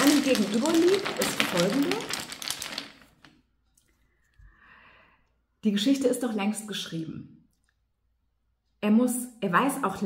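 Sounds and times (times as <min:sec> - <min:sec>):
wooden discs clicking in cloth bag: 0:00.0 - 0:03.4.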